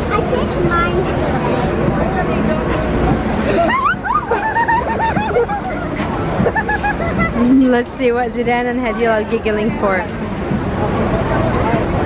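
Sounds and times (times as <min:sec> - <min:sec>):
children chattering and giggling: 0:00.0 - 0:12.0
street crowd babble: 0:00.0 - 0:12.0.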